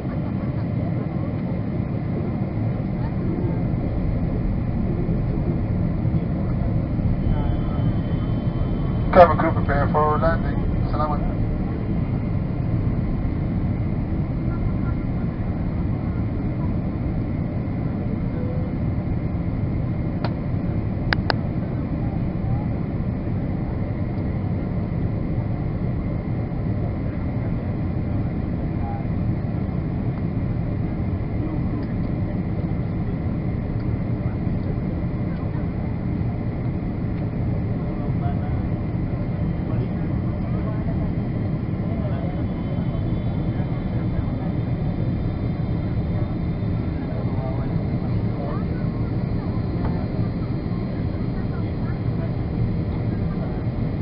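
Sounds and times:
airplane cabin engine roar: 0.0s - 54.0s.

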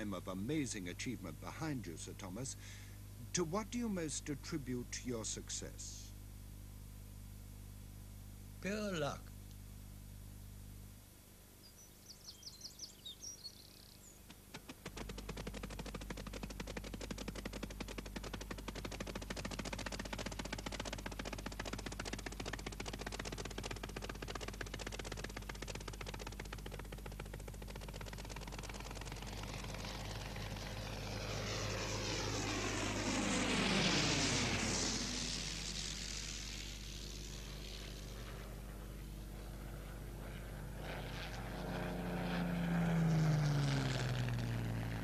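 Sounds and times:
propeller plane engine clatter: 0.0s - 2.8s, 13.8s - 45.0s.

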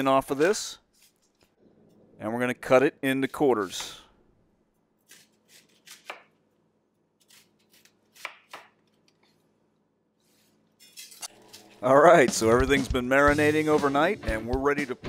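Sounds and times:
knife cutting onion on board: 5.0s - 6.4s, 7.2s - 9.2s.

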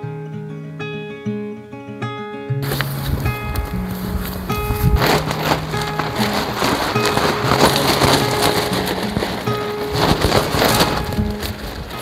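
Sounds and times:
background music with held notes: 0.0s - 12.0s
tent fabric rustling and flapping: 2.6s - 12.0s.

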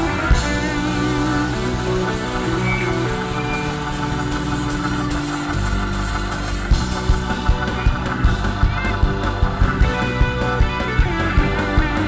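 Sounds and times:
bass line: 0.0s - 12.0s
drum beats: 0.0s - 12.0s
keyboard chords: 0.0s - 12.0s.

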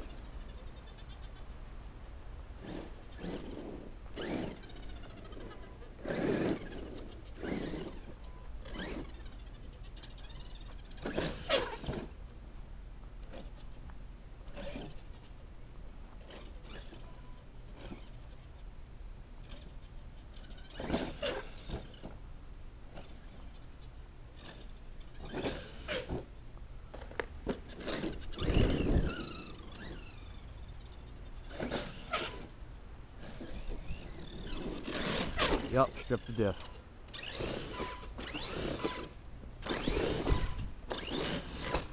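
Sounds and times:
electric motor whining: 27.9s - 32.5s, 33.2s - 41.9s.

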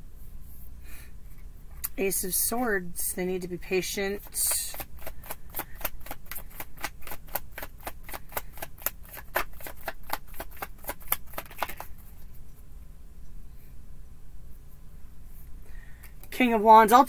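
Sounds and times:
card deck being shuffled: 4.2s - 12.3s.

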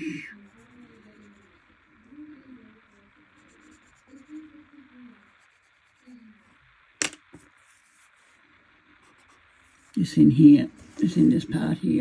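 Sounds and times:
pen scratching on paper: 0.0s - 1.6s, 3.3s - 4.5s, 5.2s - 6.1s
faint low voice: 0.0s - 6.6s.

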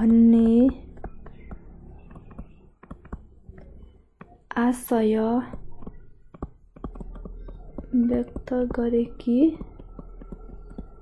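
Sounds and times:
stylus tapping and sliding: 0.0s - 11.0s.

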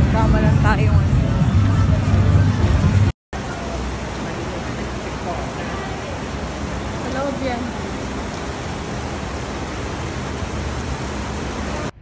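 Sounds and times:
heavy rain on pavement: 0.0s - 12.0s.

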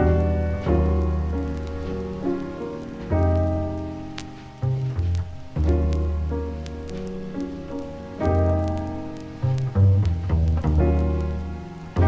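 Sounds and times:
jazz piano trio: 0.0s - 12.0s
record surface crackle: 0.0s - 12.0s.

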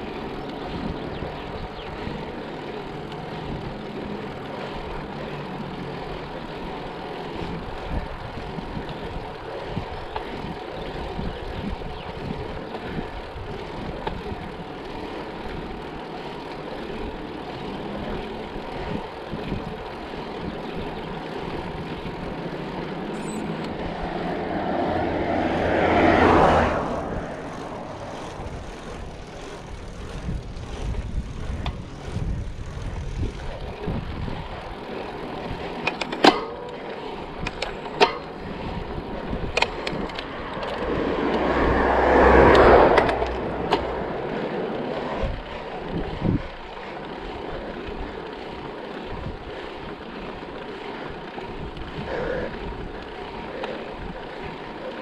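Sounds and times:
bike tyres rolling on asphalt: 0.0s - 55.0s
motor vehicle passing: 0.0s - 55.0s
wind noise: 7.4s - 14.5s, 23.2s - 35.8s, 37.3s - 44.4s, 45.0s - 46.8s, 49.1s - 49.6s.

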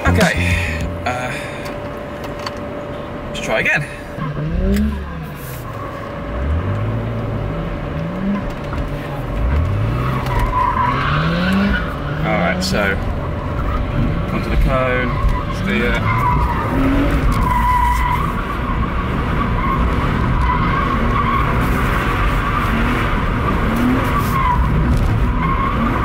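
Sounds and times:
car engine revving: 0.0s - 26.0s.

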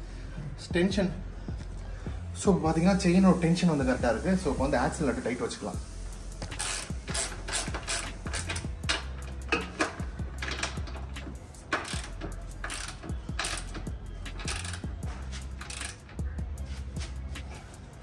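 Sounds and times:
ratchet clicking: 6.3s - 16.4s.

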